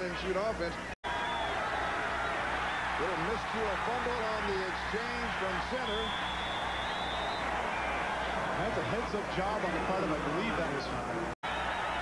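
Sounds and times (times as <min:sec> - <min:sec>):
stadium crowd noise: 0:00.0 - 0:12.0
referee's whistle: 0:05.5 - 0:07.5.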